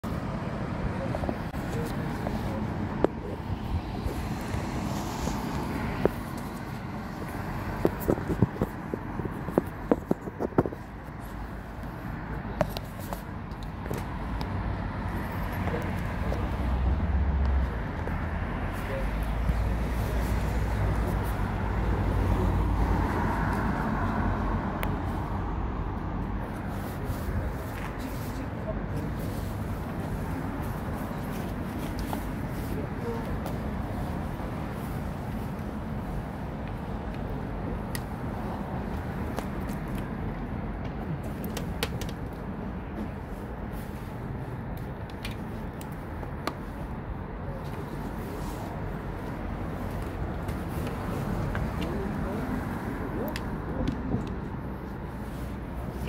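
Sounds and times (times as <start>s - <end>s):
road traffic: 0.0s - 56.0s
wind on microphone: 1.2s - 11.2s.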